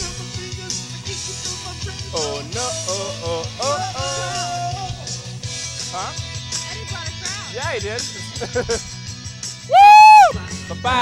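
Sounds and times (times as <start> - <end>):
rock music over loudspeakers: 0.0 - 11.0
man whooping into microphone: 9.7 - 10.5.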